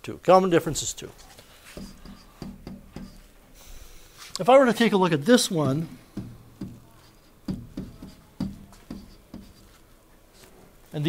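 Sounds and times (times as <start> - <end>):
pen tapping on whiteboard: 1.8 - 3.3, 5.6 - 9.8.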